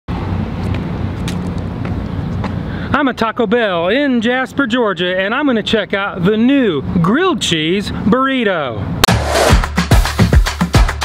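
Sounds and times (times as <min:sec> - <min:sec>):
road traffic rumble: 0:00.1 - 0:10.2.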